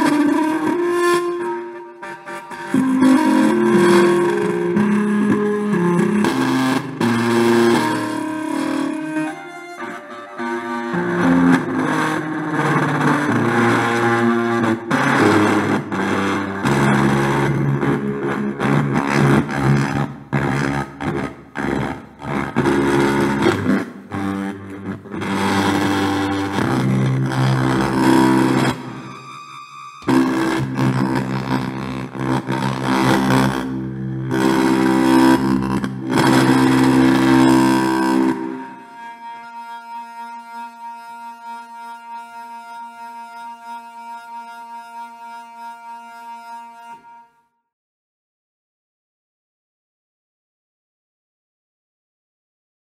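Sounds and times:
buzzy distorted speaker driver notes: 0:00.0 - 0:46.8.

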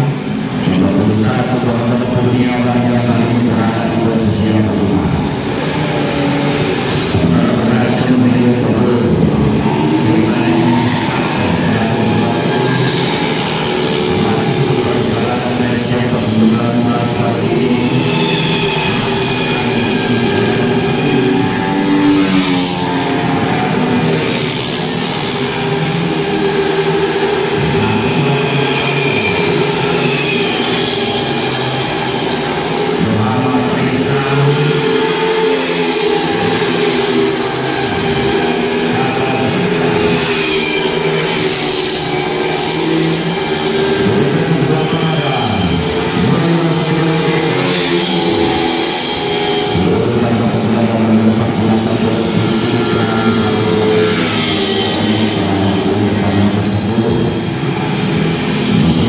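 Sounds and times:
scooter engines revving: 0:00.0 - 0:59.0.

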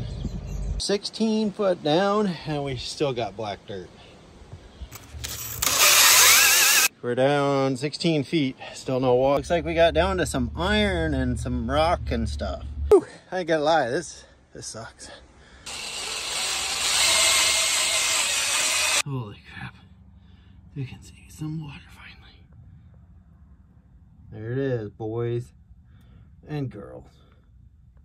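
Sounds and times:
cordless drill whining under load: 0:05.0 - 0:06.9, 0:15.7 - 0:19.0.

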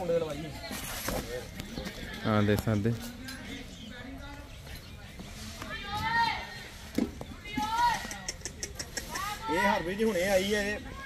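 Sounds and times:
low yard noise: 0:00.0 - 0:11.0
people talking in background: 0:00.0 - 0:11.0.

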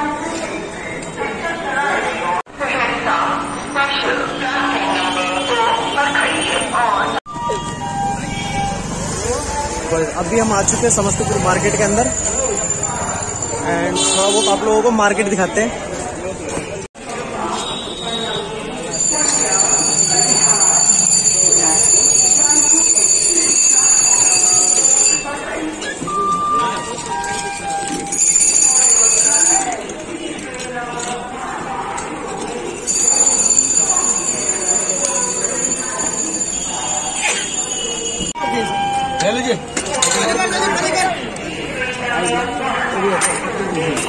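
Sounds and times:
passers-by talking: 0:00.0 - 0:44.0
road traffic: 0:07.3 - 0:17.2, 0:32.6 - 0:40.0
shrill high steady tone: 0:11.6 - 0:13.9, 0:18.9 - 0:25.4, 0:26.1 - 0:29.8, 0:32.8 - 0:39.6.

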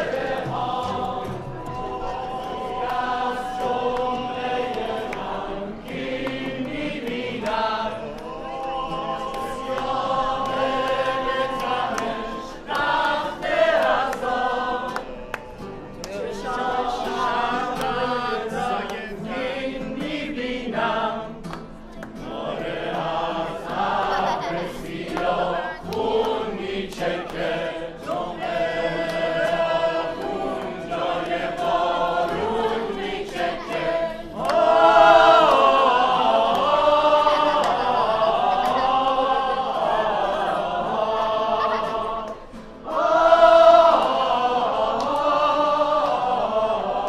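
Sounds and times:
men and women singing in chorus: 0:00.0 - 0:47.0.

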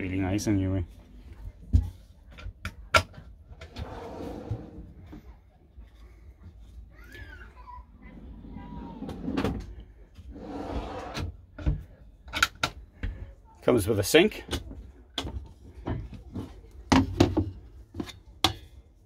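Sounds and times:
drawers opening and shutting: 0:03.6 - 0:05.1, 0:08.1 - 0:11.7.

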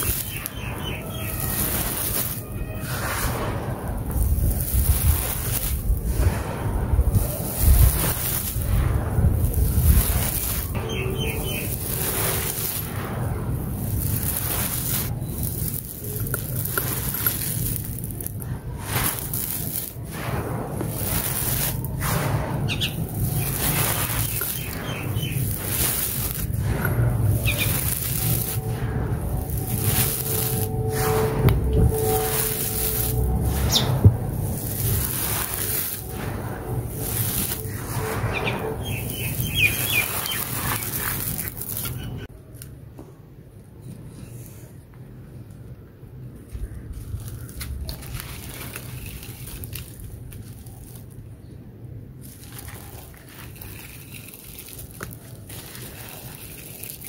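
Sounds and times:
dirt and stones pouring through hands: 0:00.0 - 0:42.3, 0:46.5 - 0:51.3, 0:52.2 - 0:57.0.

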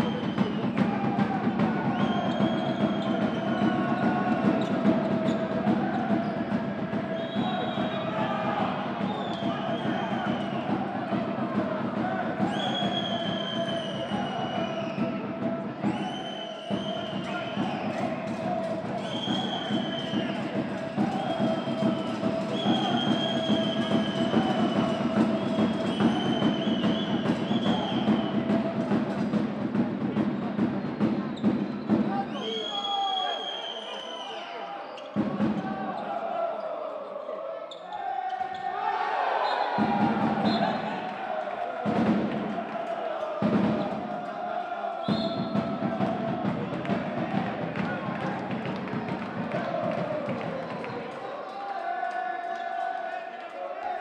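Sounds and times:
music: 0:00.0 - 0:34.2, 0:35.0 - 0:37.2, 0:39.5 - 0:54.0
crowd noise: 0:00.0 - 0:54.0.

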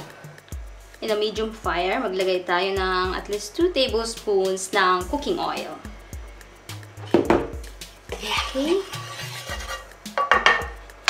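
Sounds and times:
cookware knocking and clinking: 0:09.6 - 0:10.8.

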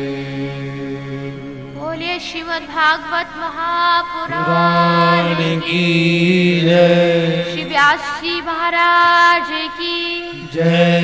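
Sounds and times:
devotional chanting held note: 0:00.0 - 0:11.0.

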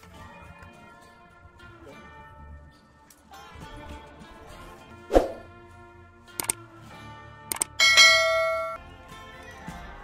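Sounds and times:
faint background music: 0:00.0 - 0:10.0
mouse clicks: 0:07.5 - 0:07.7
notification bell ding: 0:07.8 - 0:08.8.

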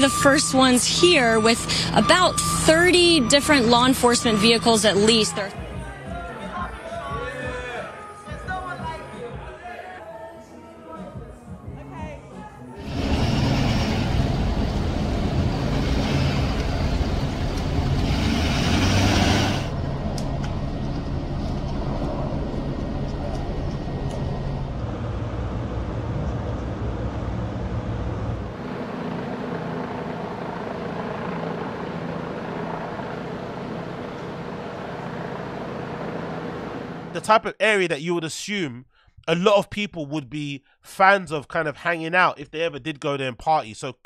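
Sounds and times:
engine and traffic rumble: 0:12.8 - 0:37.2.

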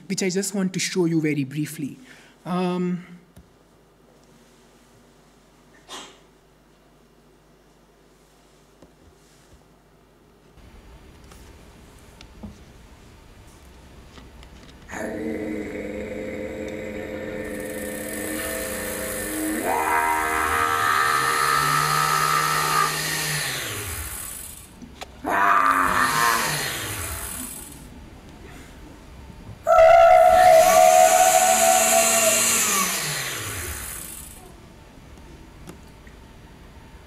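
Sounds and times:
woman making motor-like vocal noises: 0:14.9 - 0:24.5, 0:25.2 - 0:27.8, 0:29.7 - 0:34.6
blender motor spinning: 0:16.3 - 0:24.8, 0:25.6 - 0:27.9, 0:29.9 - 0:34.4.

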